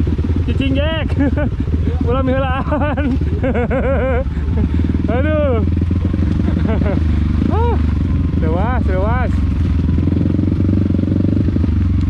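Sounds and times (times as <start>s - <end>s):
motorcycle engine running: 0.0s - 12.0s
person's voice: 1.9s - 3.0s, 5.1s - 5.7s, 7.5s - 9.4s.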